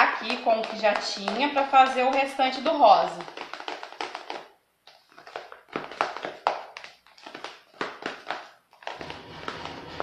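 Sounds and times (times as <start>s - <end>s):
utensil tapping and scraping bowl: 0.0s - 3.3s.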